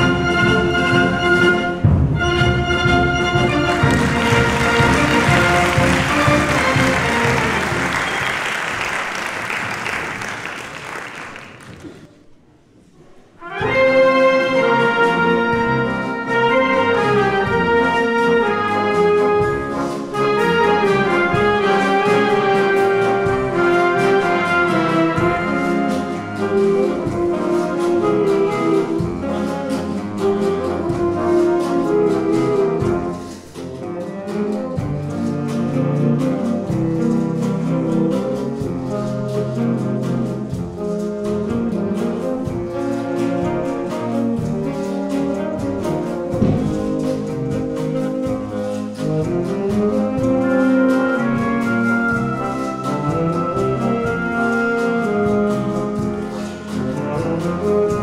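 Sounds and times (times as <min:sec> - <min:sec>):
concert band playing a beguine: 0:00.0 - 0:11.4, 0:13.6 - 0:58.0.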